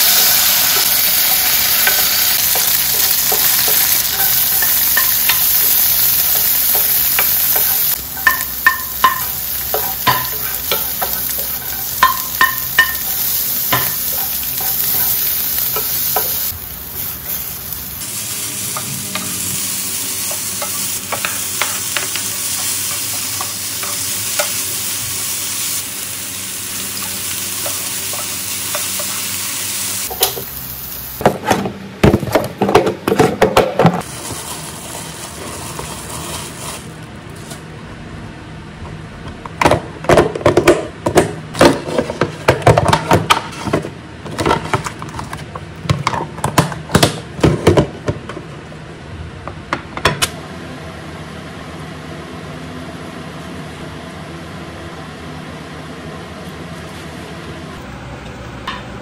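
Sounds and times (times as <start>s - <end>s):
vegetables sizzling: 0.0s - 31.5s, 34.0s - 37.1s
wooden spoon knocking on pan: 7.2s - 13.1s
tofu sizzling in oil: 19.5s - 31.2s.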